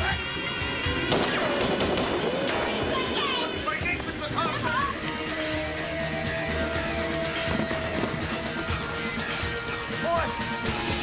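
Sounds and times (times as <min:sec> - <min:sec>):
action soundtrack music: 0:00.0 - 0:11.0
gunfire cracks: 0:01.1 - 0:03.0.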